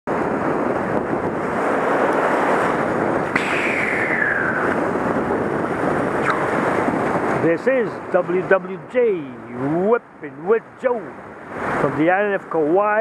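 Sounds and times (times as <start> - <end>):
surf on rocky shoreline: 0.1 - 13.0
wind buffeting microphone: 0.1 - 13.0.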